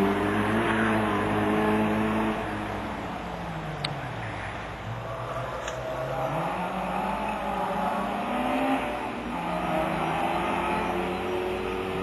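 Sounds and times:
car engine revving hard: 0.0 - 3.0, 6.0 - 12.0.

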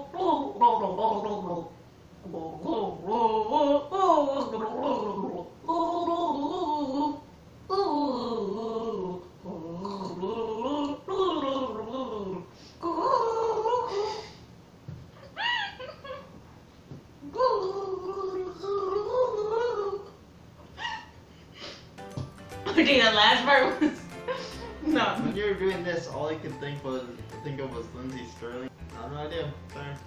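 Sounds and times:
woman gargling while humming: 0.0 - 14.2.

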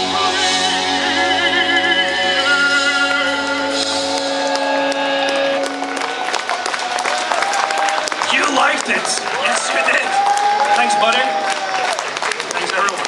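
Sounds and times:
distorted electric guitar chord: 0.0 - 6.4
bass guitar: 0.0 - 7.2
audience cheering and applauding: 0.0 - 13.0.

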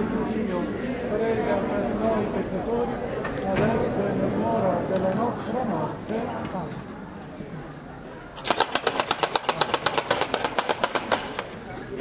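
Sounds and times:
rapid sharp cracks: 8.4 - 11.5.

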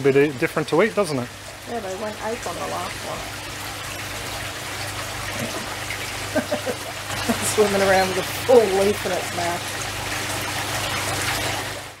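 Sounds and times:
water trickling into fish tank: 0.0 - 12.0.

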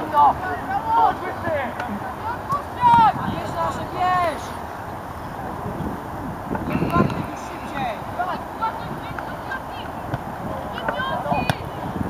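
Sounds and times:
players shouting and calling: 0.0 - 12.0.

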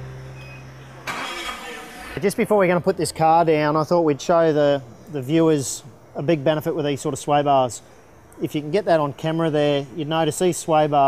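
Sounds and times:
forklift engine running: 0.0 - 2.6.

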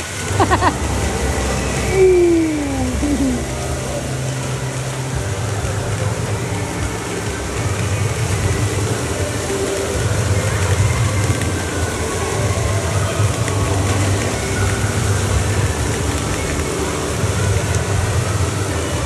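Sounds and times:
low rumble: 0.0 - 19.0
water spraying and running: 0.0 - 19.0.

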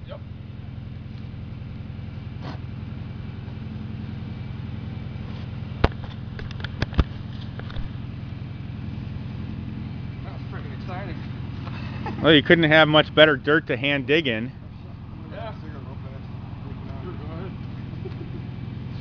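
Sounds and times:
low engine drone: 0.0 - 19.0.

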